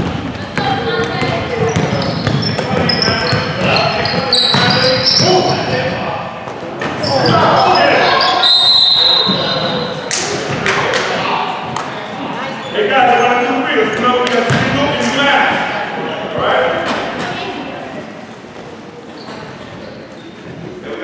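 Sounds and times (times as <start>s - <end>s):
sneakers squeaking: 0.0s - 10.6s, 11.5s - 14.8s, 18.5s - 20.8s
voices of players and spectators: 0.0s - 21.0s
referee's whistle blast: 8.2s - 9.8s.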